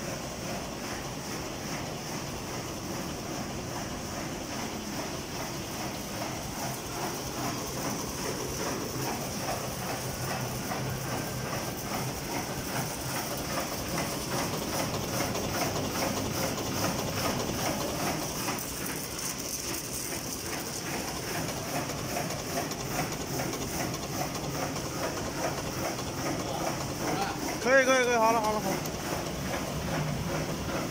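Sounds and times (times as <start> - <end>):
machine drive hum: 0.4 - 30.9.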